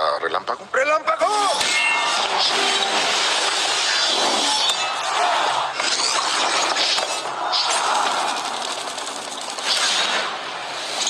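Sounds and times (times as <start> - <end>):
fast dense rattling clatter: 8.1 - 9.8.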